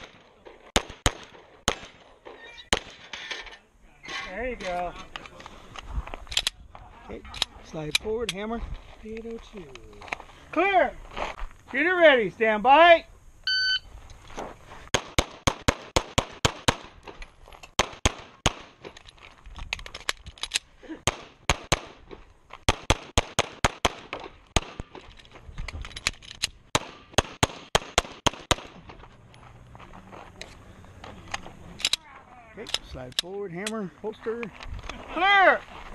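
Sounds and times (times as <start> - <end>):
pistol shots: 0.0 - 2.0, 2.7 - 3.0, 17.8 - 18.8, 21.0 - 22.0, 22.7 - 25.0, 26.7 - 28.8
shot timer beep: 13.4 - 13.9.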